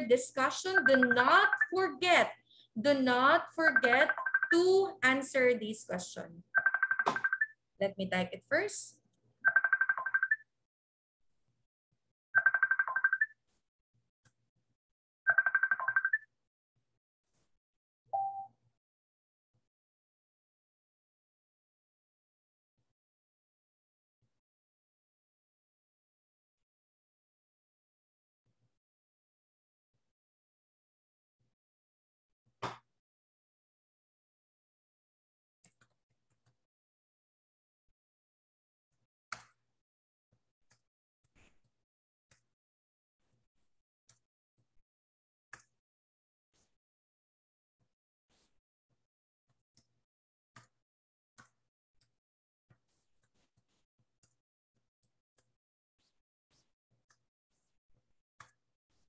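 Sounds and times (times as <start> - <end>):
phone ringtone trill: 0.7 - 1.8, 3.7 - 4.6, 6.6 - 7.5, 9.5 - 10.4, 12.4 - 13.3, 15.3 - 16.2.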